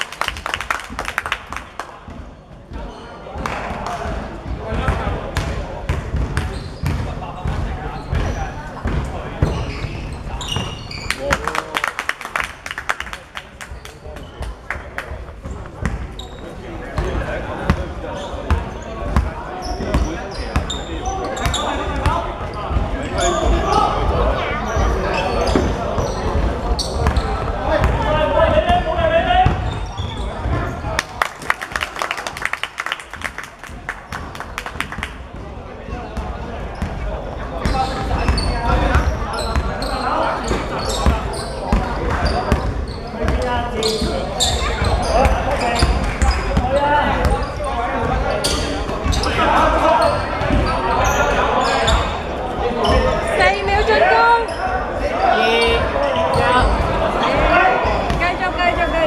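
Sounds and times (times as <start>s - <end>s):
basketball bouncing on court: 4.4s - 11.1s, 15.4s - 16.3s, 17.0s - 23.6s, 24.7s - 28.8s, 29.4s - 30.8s, 37.6s - 39.8s, 40.5s - 49.4s, 50.0s - 51.2s, 58.0s - 58.9s.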